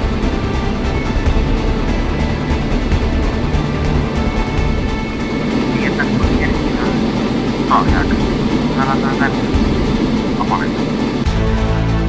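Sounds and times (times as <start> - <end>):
aircraft engine drone: 0.0 - 12.0
muffled voices: 2.1 - 11.2.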